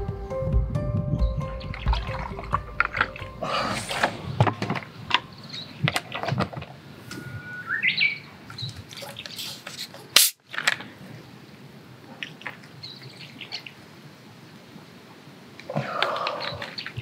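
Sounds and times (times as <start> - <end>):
birds chirping and whistling: 1.0 - 6.4, 7.0 - 9.6, 16.1 - 17.0.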